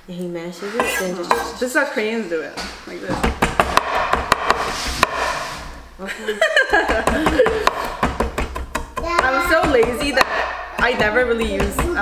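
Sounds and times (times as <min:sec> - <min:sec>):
knife handle pounding garlic on board: 0:03.2 - 0:05.4, 0:06.8 - 0:12.0.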